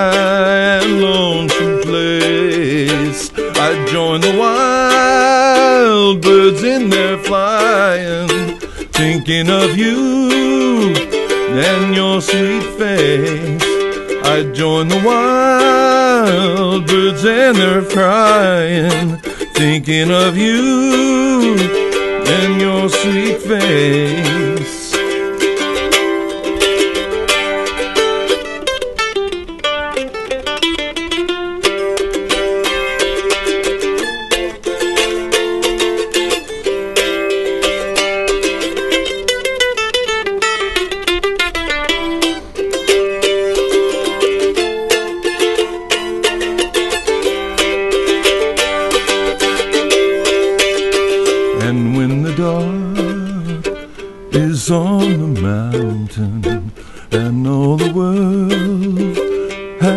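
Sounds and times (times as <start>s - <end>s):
mandolin tremolo melody: 0.0s - 59.9s.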